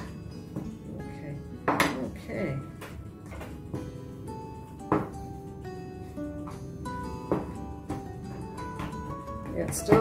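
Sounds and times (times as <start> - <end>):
background music with held notes: 0.0 - 10.0
mixing bowl knocking on board: 4.9 - 5.2, 7.3 - 8.1, 8.7 - 10.0.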